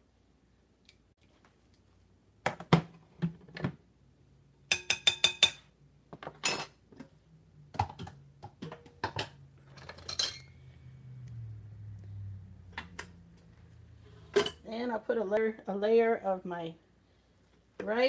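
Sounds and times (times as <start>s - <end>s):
metal ladle scraping saucepan: 9.7s - 10.7s, 14.0s - 14.7s.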